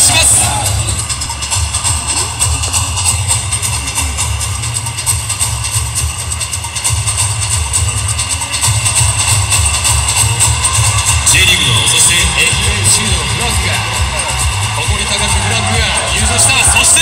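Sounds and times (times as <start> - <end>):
music with a steady beat: 0.0 - 17.0
stadium crowd: 0.0 - 17.0.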